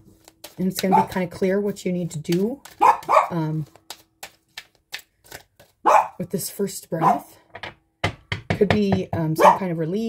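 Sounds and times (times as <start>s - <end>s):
cards being shuffled by hand: 0.0s - 7.0s.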